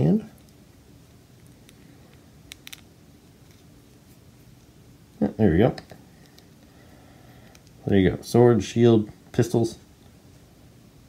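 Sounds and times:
small plastic clicks: 0:01.4 - 0:02.9.

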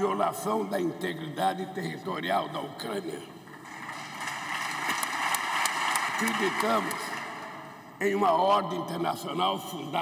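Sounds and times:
crowd applause: 0:03.6 - 0:07.7.

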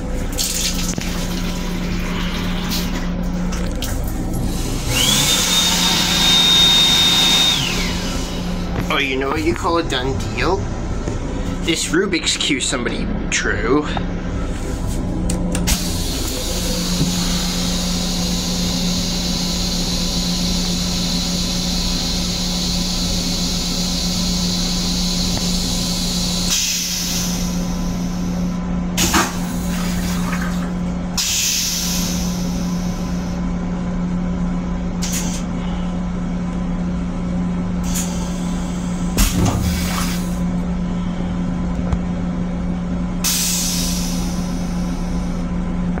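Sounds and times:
steady low hum: 0:00.0 - 0:46.0
toilet flushing hiss: 0:15.7 - 0:33.4, 0:37.8 - 0:40.5, 0:43.2 - 0:45.3.

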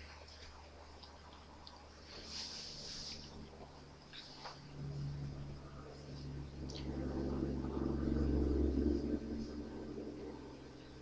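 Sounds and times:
hands rubbing near microphone: 0:02.1 - 0:03.5.

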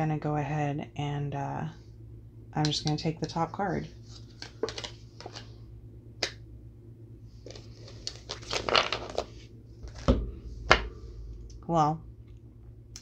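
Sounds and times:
faint steady hum: 0:00.0 - 0:13.0
cards sliding rustle: 0:04.0 - 0:05.6, 0:07.4 - 0:09.5.

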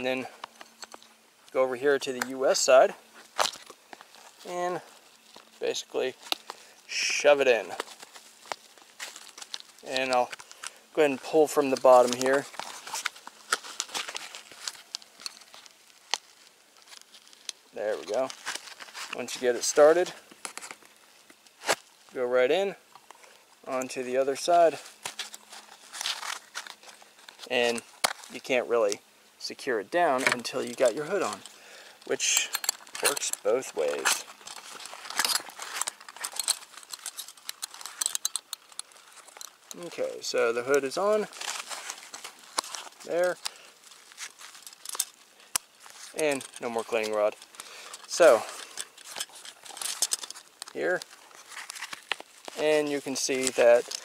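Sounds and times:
plastic holster clicks and scrapes: 0:41.3 - 0:52.6.

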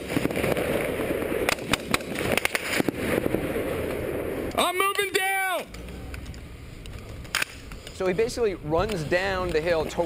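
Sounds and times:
sharp crack: 0:00.0 - 0:08.2.

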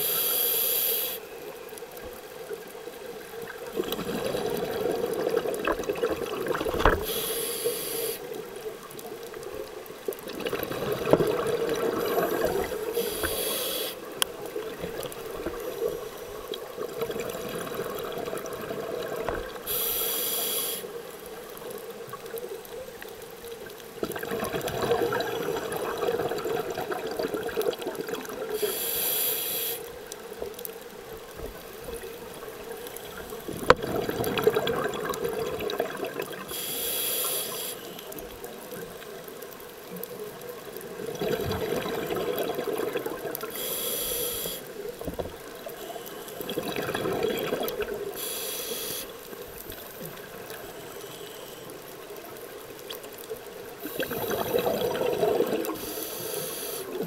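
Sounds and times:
scuba regulator breathing: 0:00.0 - 0:01.4, 0:07.0 - 0:08.4, 0:11.7 - 0:14.2, 0:19.6 - 0:21.0, 0:28.5 - 0:30.0, 0:36.4 - 0:38.2, 0:43.5 - 0:44.8, 0:48.1 - 0:49.2, 0:55.6 - 0:57.0
bubbling exhalation: 0:53.9 - 0:55.7.

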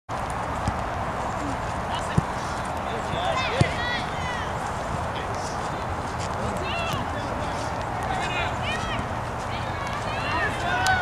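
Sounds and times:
steady outdoor hiss: 0:00.1 - 0:11.0
soccer ball thuds: 0:00.5 - 0:01.1, 0:01.9 - 0:02.4, 0:03.0 - 0:04.3, 0:06.3 - 0:07.2
players shouting: 0:01.3 - 0:11.0.

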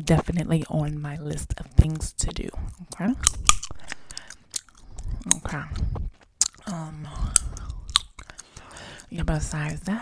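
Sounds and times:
gum chewing: 0:01.6 - 0:10.0.

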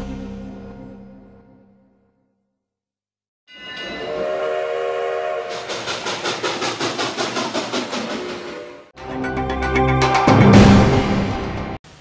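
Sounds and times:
train horn chord: 0:03.9 - 0:05.8
train wheels clickety-clack: 0:05.5 - 0:08.9.

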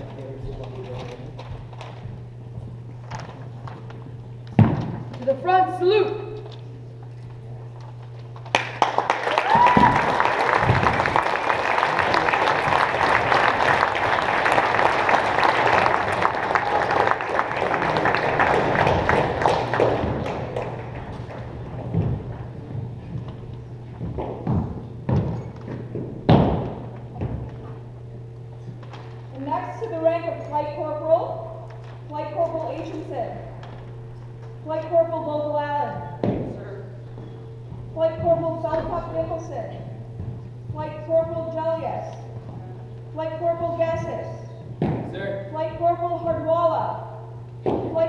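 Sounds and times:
audience applauding: 0:08.4 - 0:21.8
boots stamping on wooden floor: 0:18.9 - 0:27.7, 0:37.2 - 0:39.3.

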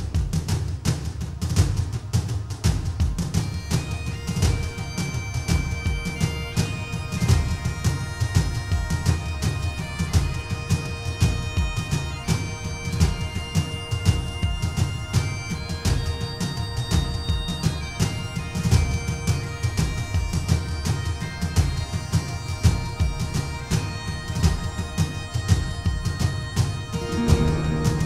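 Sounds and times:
steady drum beat: 0:00.0 - 0:28.0
bagpipe melody: 0:03.0 - 0:28.0.

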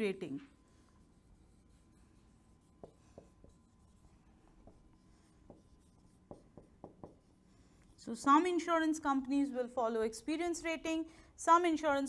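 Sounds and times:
marker writing on whiteboard: 0:00.6 - 0:07.7.

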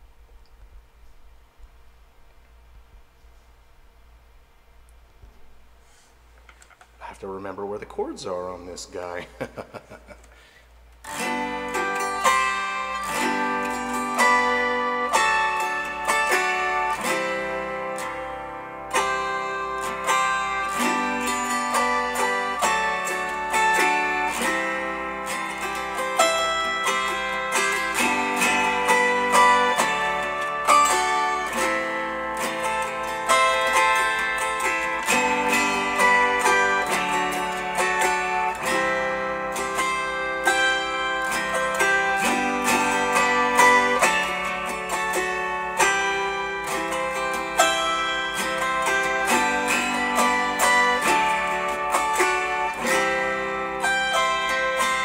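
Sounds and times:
autoharp strummed: 0:05.8 - 0:55.0.

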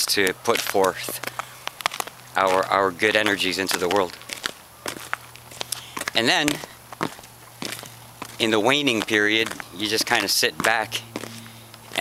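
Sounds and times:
footsteps crunching on snow: 0:00.0 - 0:12.0.

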